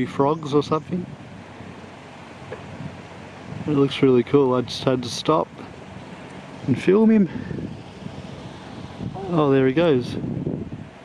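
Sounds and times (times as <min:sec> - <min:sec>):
wind rushing: 0:06.5 - 0:11.0.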